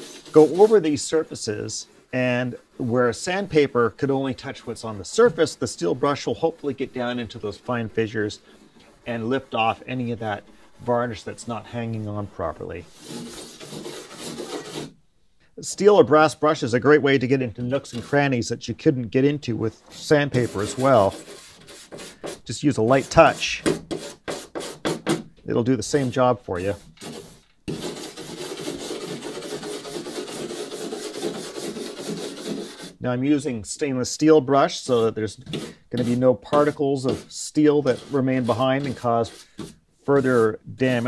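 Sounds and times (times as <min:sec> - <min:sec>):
wire brush scrubbing wood: 0:00.0 - 0:12.2, 0:12.9 - 0:14.9, 0:19.8 - 0:25.2, 0:25.9 - 0:33.0, 0:34.8 - 0:41.0.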